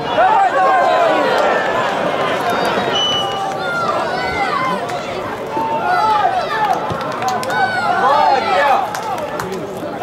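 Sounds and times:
outdoor crowd noise: 0.0 - 10.0.

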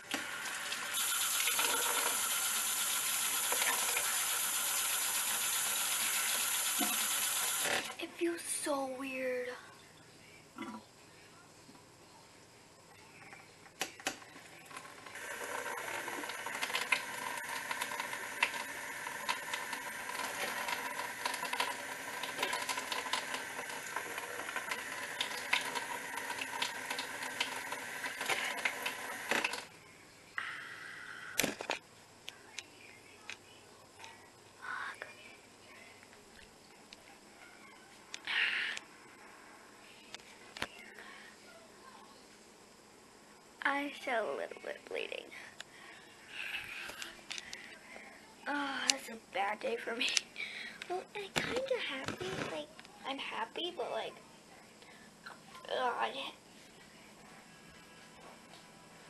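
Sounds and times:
kitchen tap running: 0.0 - 8.0, 15.2 - 29.6.

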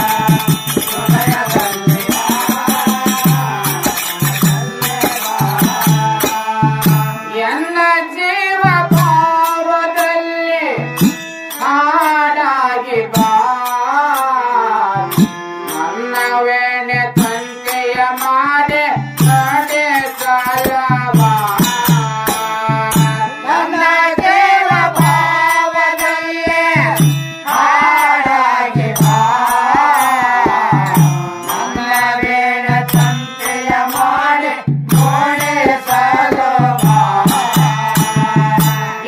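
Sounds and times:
hand cymbals clinking: 0.0 - 7.2
tabla drum strokes: 0.0 - 7.5, 8.6 - 12.2, 17.2 - 39.0
harmonium chords: 0.0 - 39.0.

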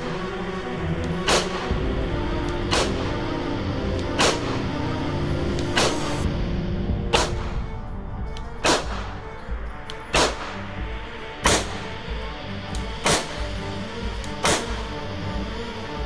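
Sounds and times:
background music: 0.0 - 16.0
pistol shots: 7.1 - 7.5, 8.6 - 9.2, 10.1 - 10.6, 11.4 - 11.8, 14.4 - 14.9.

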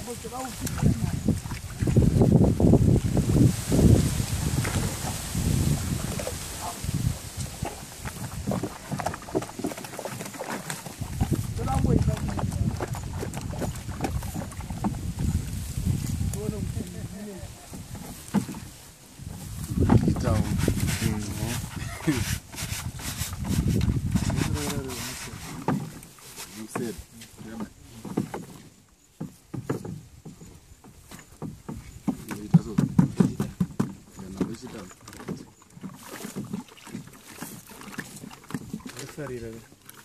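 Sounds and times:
people talking: 0.0 - 1.2, 11.6 - 12.7, 16.3 - 17.6, 20.0 - 22.3, 24.4 - 25.6, 26.5 - 28.2, 32.3 - 33.3, 34.2 - 34.9, 39.0 - 39.6
water running into plastic tub: 0.0 - 40.0
brush scrubbing a ribbed mat: 20.2 - 27.2.

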